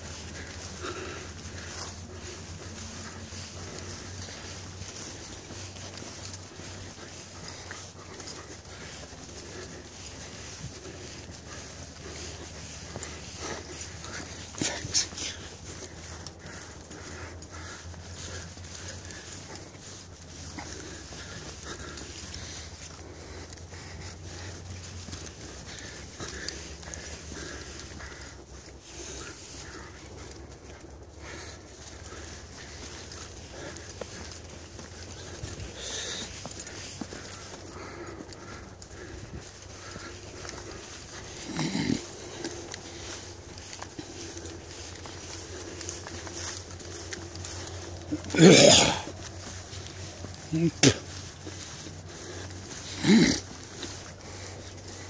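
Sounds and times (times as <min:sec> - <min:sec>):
footsteps on dirt trail: 0:00.0 - 0:55.0.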